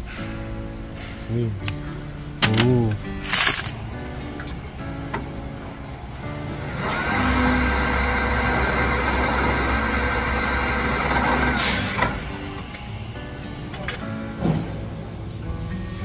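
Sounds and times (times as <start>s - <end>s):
drill press whine and cutting: 6.7s - 13.1s.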